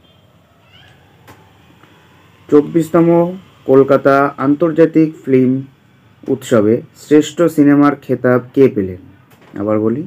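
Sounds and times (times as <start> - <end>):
short animal call rising in pitch: 0.4 - 2.5.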